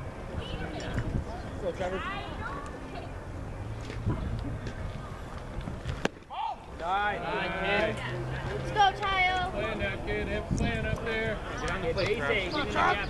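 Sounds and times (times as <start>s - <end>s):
baseball smacking into mitt: 5.8s - 6.3s.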